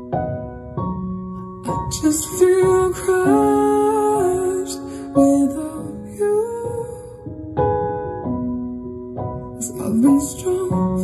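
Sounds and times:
slow music with long held notes: 0:00.0 - 0:11.0.

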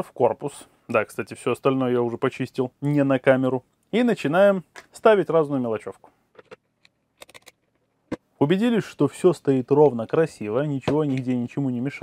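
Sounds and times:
plastic parts clicking: 0:06.4 - 0:07.8.

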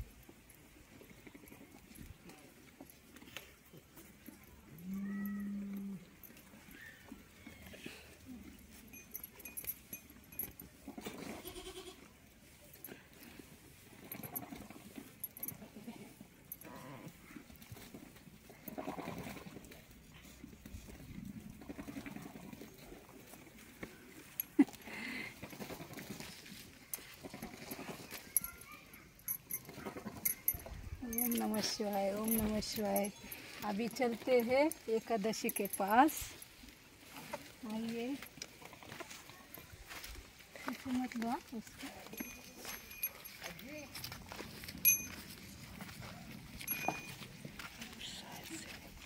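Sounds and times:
low farmyard background: 0:00.0 - 0:49.0
goats bleating: 0:11.2 - 0:12.0.

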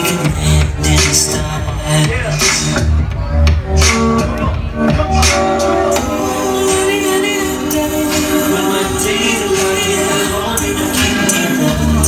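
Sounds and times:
backing track with held chords: 0:00.0 - 0:12.0
person singing: 0:04.9 - 0:12.0.

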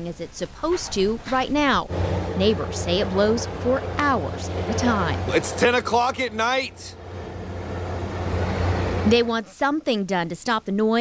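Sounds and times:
exhaust fan running: 0:01.4 - 0:09.6.

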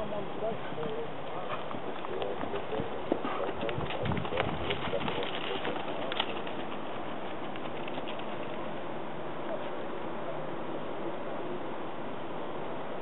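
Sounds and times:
horse hoofbeats on sand: 0:00.6 - 0:08.8.

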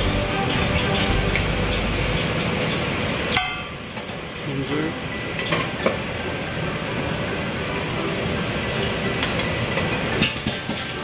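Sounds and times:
kitchen extraction roar: 0:00.0 - 0:11.0.

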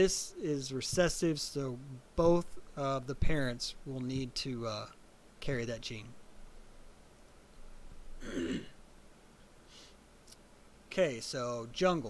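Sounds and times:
man clearing his throat: 0:08.2 - 0:08.8.

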